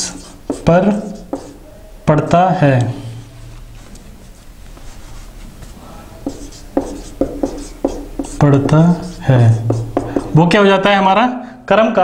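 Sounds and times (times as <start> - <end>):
marker pen writing on whiteboard: 0.0 - 1.7, 5.1 - 10.6.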